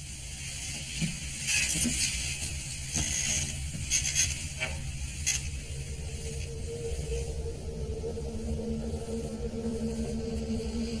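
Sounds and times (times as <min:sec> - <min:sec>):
low rumbling drone: 0:03.6 - 0:11.0.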